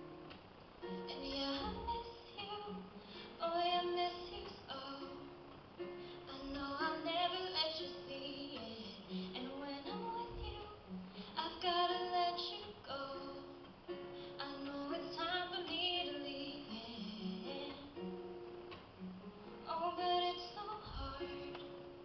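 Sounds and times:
acoustic guitar: 0.0s - 22.0s
woman singing: 0.9s - 18.1s, 19.5s - 21.9s.

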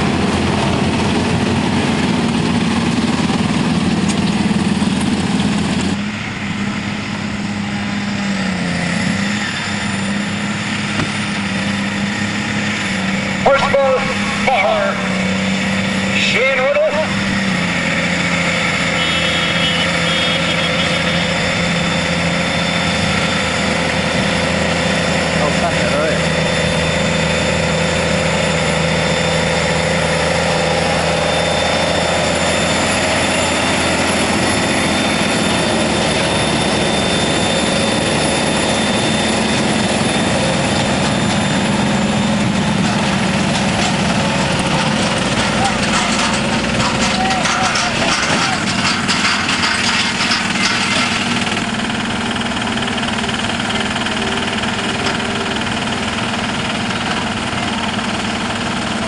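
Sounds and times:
tractor diesel engines under load: 0.0s - 59.0s.

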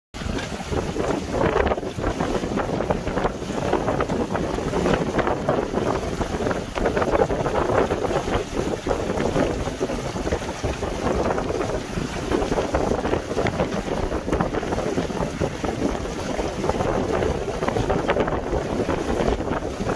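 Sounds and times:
water splashing against hull: 0.2s - 19.9s
wind buffeting microphone: 0.2s - 19.9s.

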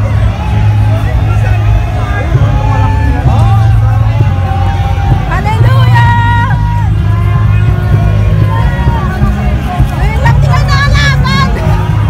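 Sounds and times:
voices of marchers: 0.0s - 12.0s.

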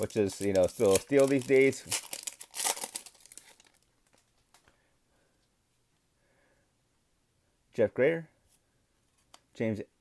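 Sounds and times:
foil wrapper crinkling: 0.0s - 4.7s.

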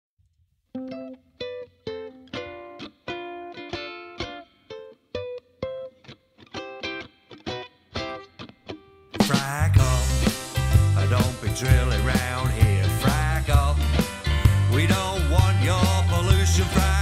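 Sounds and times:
ukulele strumming chords: 0.8s - 17.0s.

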